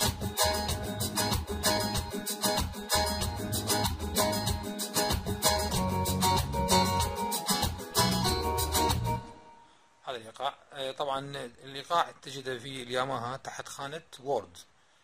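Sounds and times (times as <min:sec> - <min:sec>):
bass: 0:00.0 - 0:02.1, 0:02.9 - 0:09.3
percussion: 0:00.0 - 0:09.2
strummed guitar rhythm: 0:00.0 - 0:09.4.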